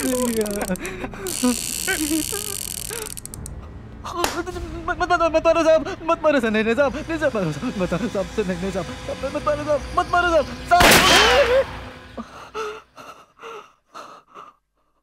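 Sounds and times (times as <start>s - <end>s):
man whimpering and crying: 0.0s - 6.2s, 12.2s - 14.6s
gasping sobs: 0.6s - 4.3s, 12.2s - 15.0s.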